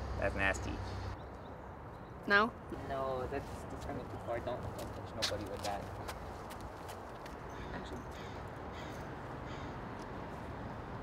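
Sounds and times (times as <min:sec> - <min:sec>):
bird calling: 0:07.5 - 0:09.8.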